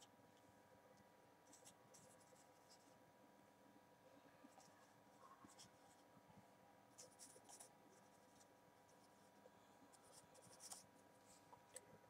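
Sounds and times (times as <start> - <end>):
marker pen writing on whiteboard: 7.0 - 9.3, 9.9 - 10.9.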